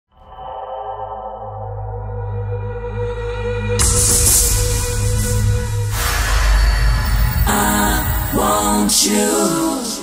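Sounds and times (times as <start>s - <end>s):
deep steady bass note: 1.9s - 7.5s.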